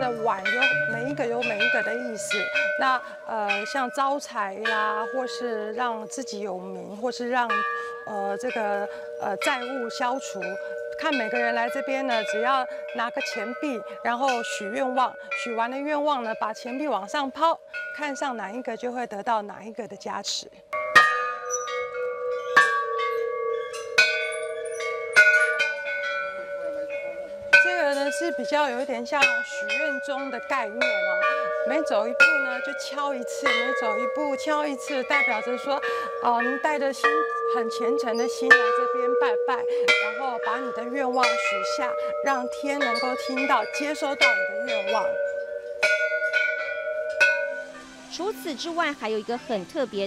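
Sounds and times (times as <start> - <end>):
metal bells ringing: 0.0 - 19.6, 20.2 - 50.0.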